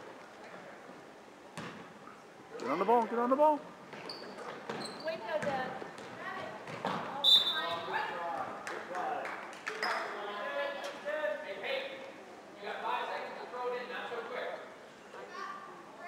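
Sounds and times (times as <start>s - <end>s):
sneaker squeaks: 3.9s - 5.7s, 6.7s - 8.0s, 9.7s - 10.2s
basketball bouncing on wooden floor: 4.7s - 7.0s.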